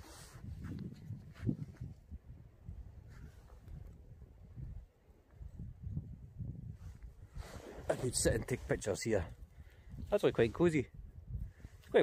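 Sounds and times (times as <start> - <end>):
camera handling rumble and bumps: 0.6 - 2.0.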